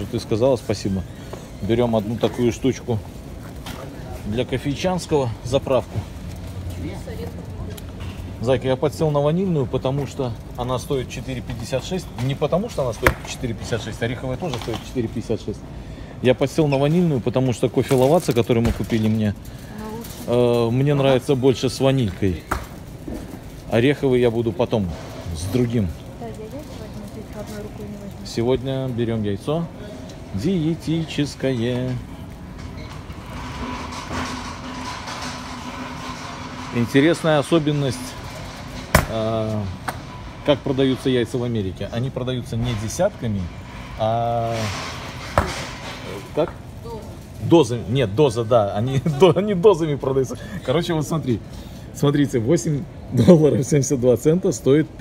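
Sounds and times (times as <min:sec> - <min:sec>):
rumbling indoor store background: 0:00.0 - 0:55.0.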